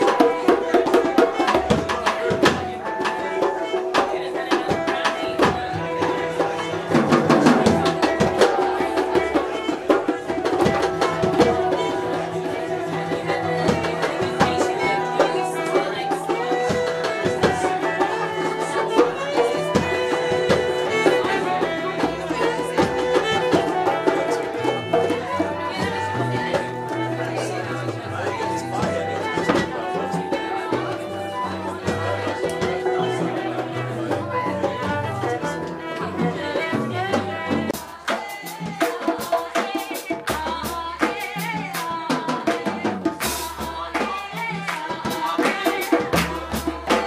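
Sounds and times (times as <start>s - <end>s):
sustained pitched instruments: 0.0s - 38.0s
percussion strikes: 0.0s - 47.0s.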